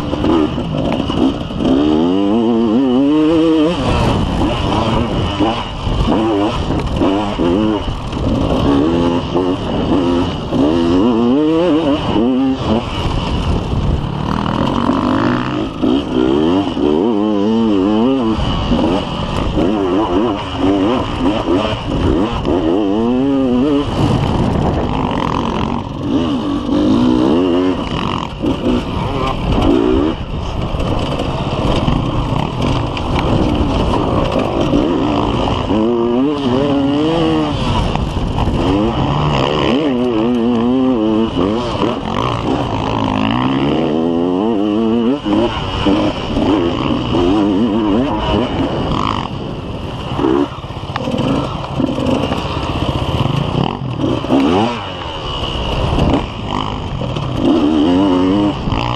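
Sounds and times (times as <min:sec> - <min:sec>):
dirt bike engine revving: 0:00.0 - 0:58.9
wind and bumps on camera: 0:11.9 - 0:16.8, 0:23.6 - 0:26.9, 0:27.7 - 0:35.8, 0:36.6 - 0:40.6.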